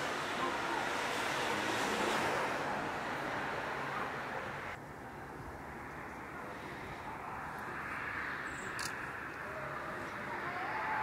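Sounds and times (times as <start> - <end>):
outdoor hiss and rumble: 0.0 - 11.0.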